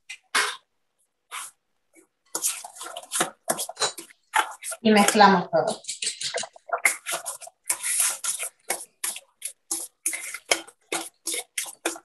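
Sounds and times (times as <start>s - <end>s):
fork scraping in glass bowl: 2.4s - 5.1s, 5.7s - 12.0s.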